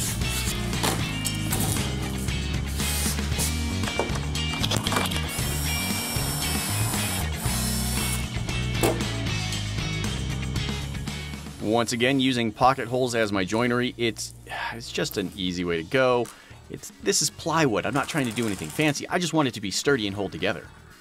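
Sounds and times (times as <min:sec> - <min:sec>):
background music with bass line: 0:00.0 - 0:12.5
cordless drill boring into plywood: 0:05.4 - 0:08.2.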